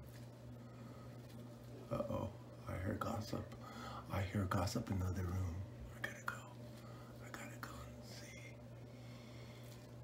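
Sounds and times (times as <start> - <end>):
steady low hum: 0.0 - 10.0
person whispering: 1.9 - 8.6.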